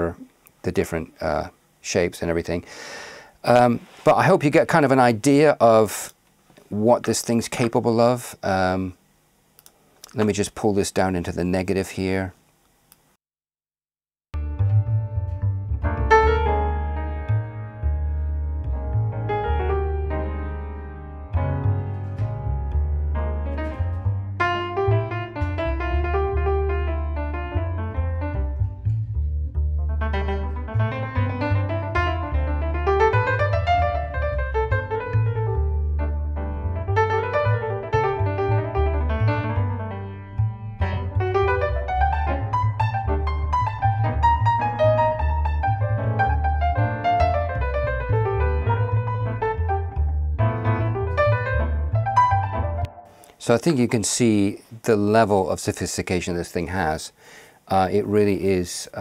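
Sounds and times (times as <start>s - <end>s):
bass line: 14.3s - 54.0s
jazz piano: 14.4s - 54.7s.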